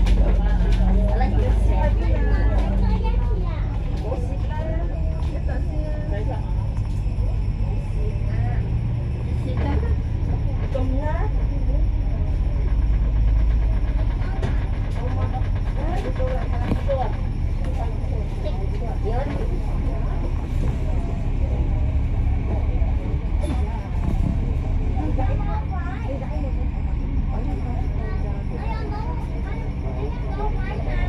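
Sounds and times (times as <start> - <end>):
bus engine rumble: 0.0 - 31.0
faint voices: 0.0 - 31.0.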